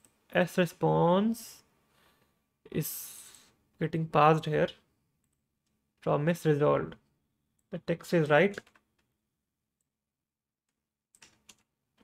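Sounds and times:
computer keyboard clicks: 8.5s - 9.1s, 11.2s - 11.7s.

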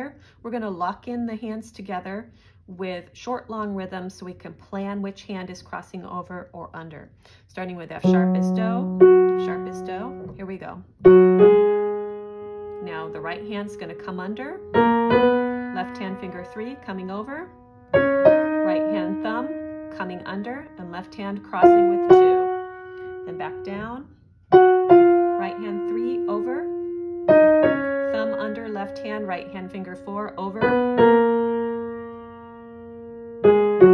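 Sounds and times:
piano notes: 8.0s - 33.9s.

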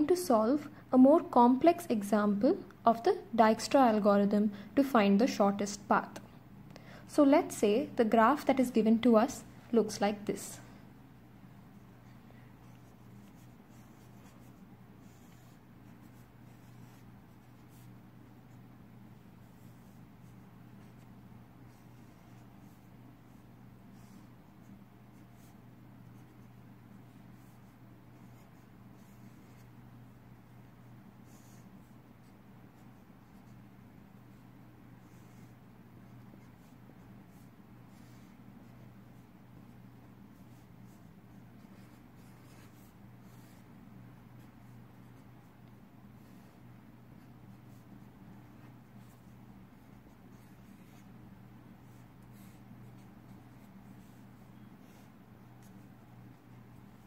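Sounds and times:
steady low hum: 0.0s - 57.0s
marker pen scratching on paper: 11.7s - 57.0s.

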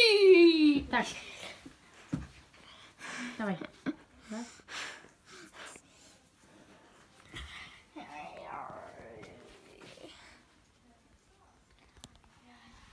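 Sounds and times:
person whispering: 7.9s - 10.4s.

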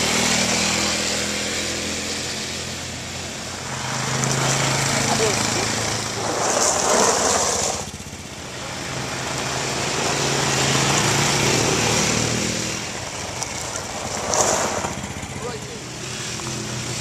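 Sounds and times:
quad bike engines running: 0.0s - 17.0s.

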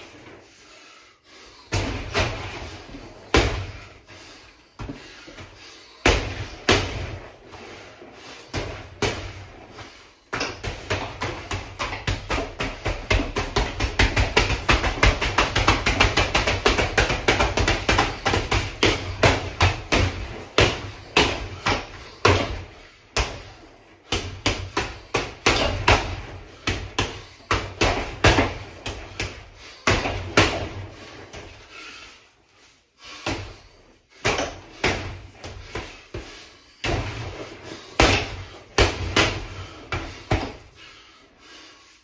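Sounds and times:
gloves punching heavy bag: 1.7s - 4.0s, 4.8s - 7.5s, 8.4s - 31.6s, 33.1s - 40.7s.

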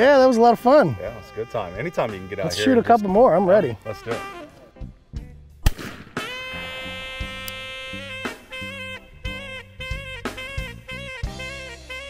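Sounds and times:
music with long held note: 0.0s - 5.4s, 6.3s - 12.0s
low repeating beat: 0.6s - 12.0s
shotgun shot: 5.6s - 6.6s.

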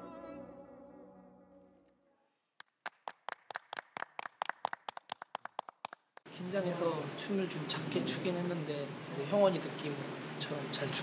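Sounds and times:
people clapping: 2.6s - 6.3s.

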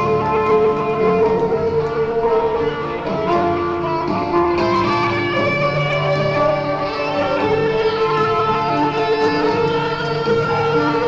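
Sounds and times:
live rock band playing: 0.0s - 11.0s
long held lead note: 0.0s - 11.0s.

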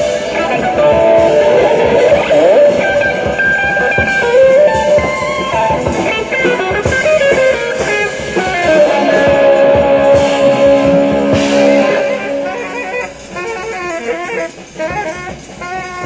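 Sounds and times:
drums and cymbals: 0.0s - 16.0s
jazz electric guitar: 0.0s - 16.0s.

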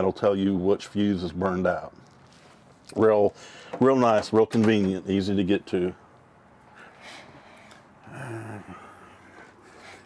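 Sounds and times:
man's breathy vocal sound: 6.8s - 10.0s.

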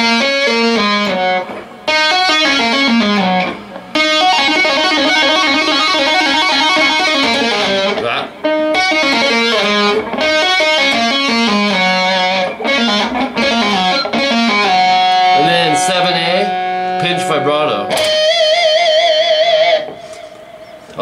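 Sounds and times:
electric guitar tapping: 0.0s - 21.0s.

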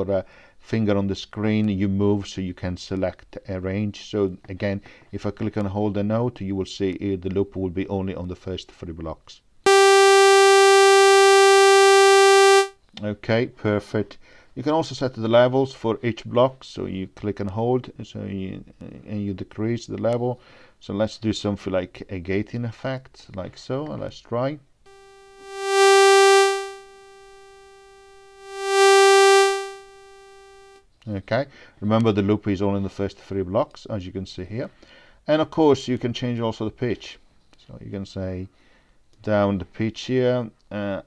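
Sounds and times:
sustained buzzy synthesizer note: 9.7s - 12.7s, 24.9s - 30.8s.

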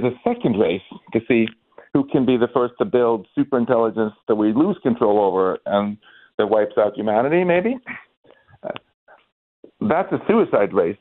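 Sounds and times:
man talking over telephone: 0.0s - 7.9s.

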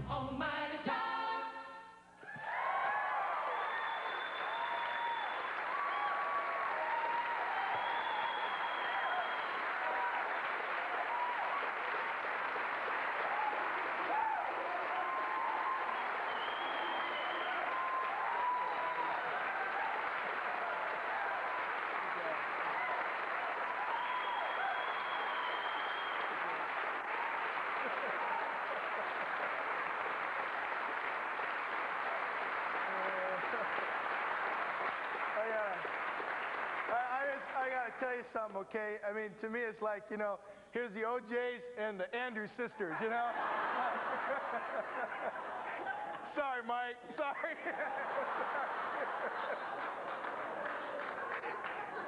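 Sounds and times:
audience cheering: 2.2s - 37.7s
audience applause: 2.4s - 38.2s, 43.2s - 46.6s, 47.3s - 52.0s.

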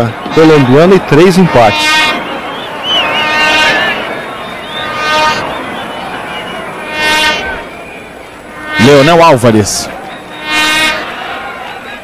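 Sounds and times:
horn blasts: 0.0s - 12.0s
stadium crowd noise: 0.0s - 12.0s
high wavering whistle: 1.9s - 8.2s.

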